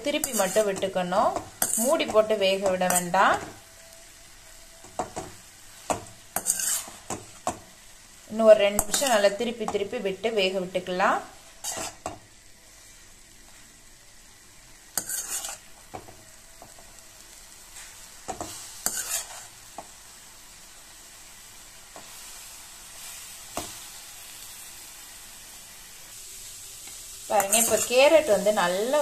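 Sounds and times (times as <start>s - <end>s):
carrot sizzling in a pan: 0.0s - 29.0s
ladle scraping a metal pan: 0.1s - 0.9s, 6.4s - 7.1s, 11.6s - 12.0s, 15.0s - 15.7s, 18.8s - 19.5s.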